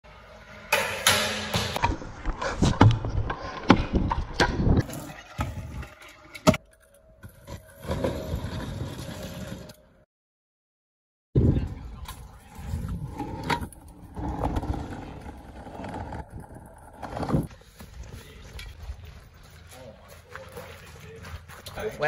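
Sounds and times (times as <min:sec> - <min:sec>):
scooter wheels rolling on concrete: 0:01.0 - 0:10.0, 0:11.8 - 0:22.0.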